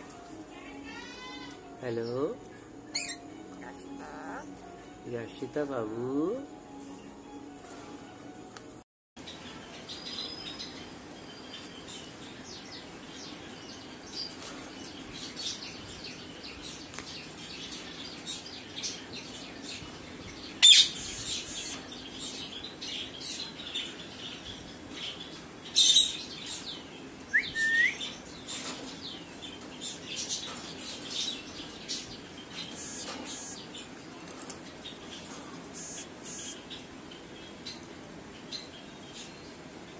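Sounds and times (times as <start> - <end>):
parakeets calling: 0.6 - 4.5, 13.6 - 39.5
small clicks and rustles: 32.5 - 35.7.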